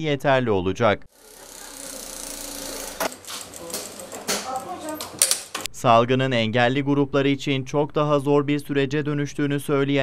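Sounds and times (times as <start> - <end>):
sewing machines whirring: 1.1 - 5.7.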